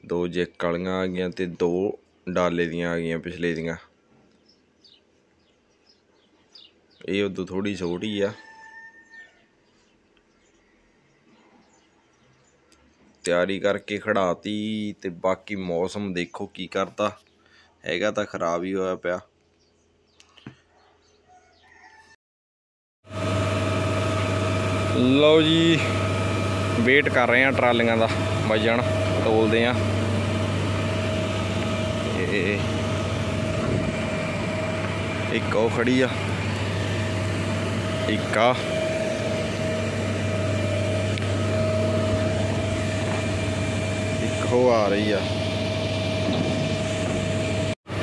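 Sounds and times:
steady whine: 23.1s - 48.0s
tractor diesel engine idling: 23.7s - 47.2s.

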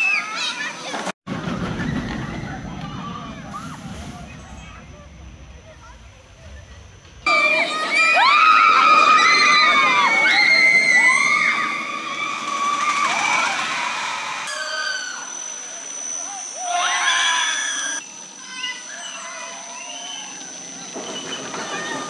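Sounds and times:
roller coaster riders screaming: 0.0s - 22.0s.

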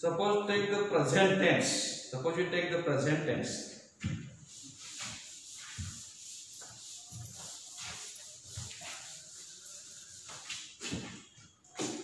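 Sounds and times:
duster rubbing on blackboard: 4.2s - 11.2s.

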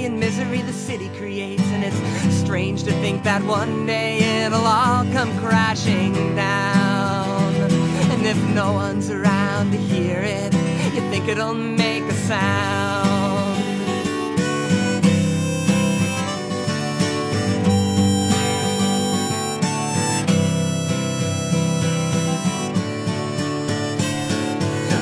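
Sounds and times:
strummed acoustic guitar: 0.0s - 25.0s
harmonica playing held notes: 12.7s - 25.0s.

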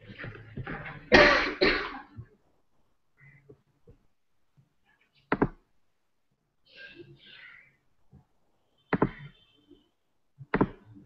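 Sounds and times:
person coughing: 1.1s - 2.2s.

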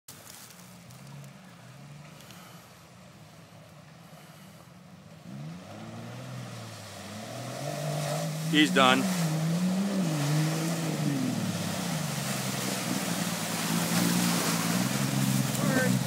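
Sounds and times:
engine revving through water: 5.1s - 16.0s
water splashing: 5.3s - 16.0s.

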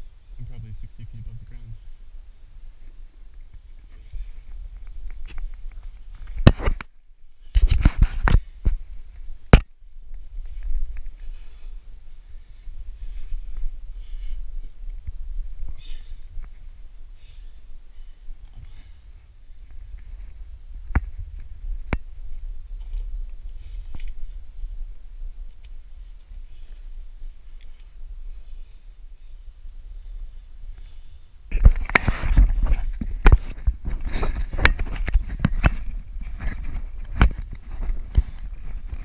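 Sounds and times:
knocks and bumps on roots: 6.2s - 6.9s.

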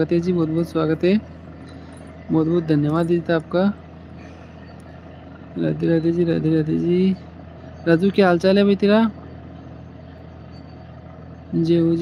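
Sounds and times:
steady low background hum: 0.0s - 12.0s.

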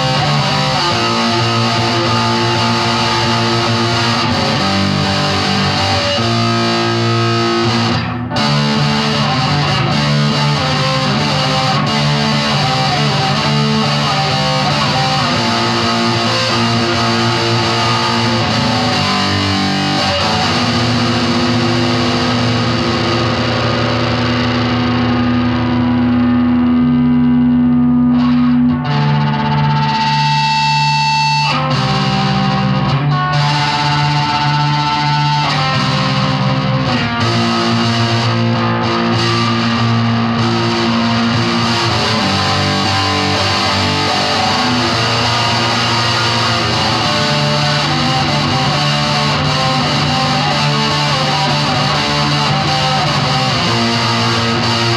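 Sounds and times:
distorted electric guitar chords: 0.0s - 54.9s.

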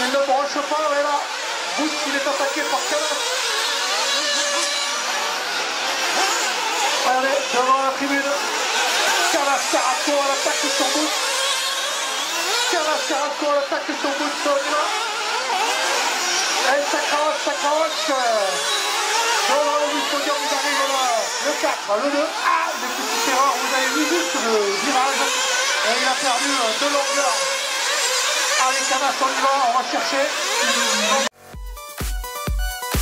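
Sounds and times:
small nitro engines revving: 0.0s - 31.4s.

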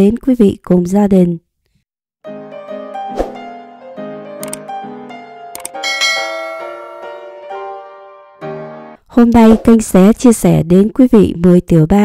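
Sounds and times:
soft keyboard background music: 2.2s - 9.0s
sharp clicks: 4.4s - 4.7s, 5.6s - 5.8s
bright bell-like chime: 5.7s - 7.6s.

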